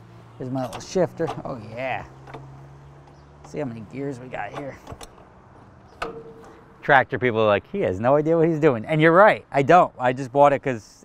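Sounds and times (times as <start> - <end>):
gear shifter click: 0.6 - 1.4, 4.5 - 6.6.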